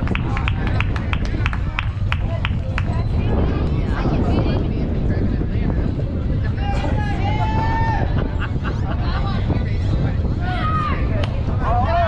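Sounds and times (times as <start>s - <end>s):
faint voices: 0.0s - 12.0s
wind buffeting microphone: 0.0s - 12.0s.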